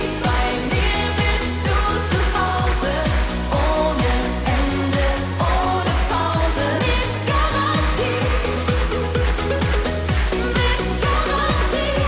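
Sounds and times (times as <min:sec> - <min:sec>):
bass line: 0:00.0 - 0:12.0
woman singing pop song: 0:00.0 - 0:12.0.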